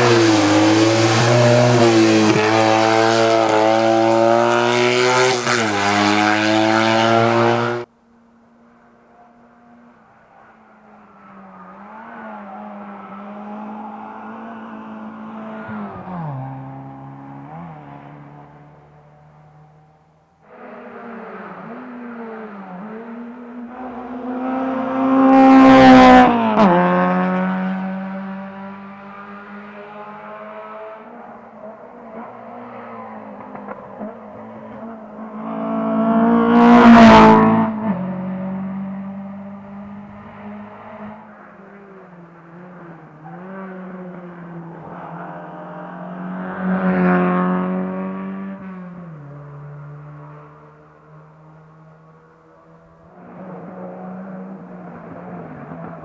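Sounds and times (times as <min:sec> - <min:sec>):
rally car engines passing: 0:00.0 - 0:56.0.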